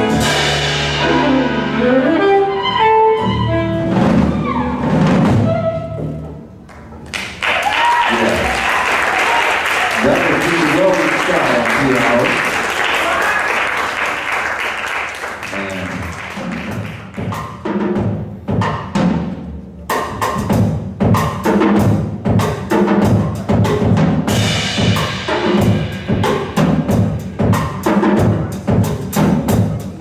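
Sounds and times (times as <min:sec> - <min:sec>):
jazz drum kit playing: 0:00.0 - 0:30.0
applause: 0:07.0 - 0:17.3.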